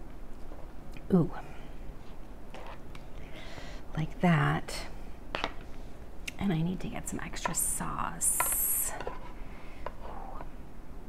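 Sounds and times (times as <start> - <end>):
air conditioner hum: 0.0 - 11.0.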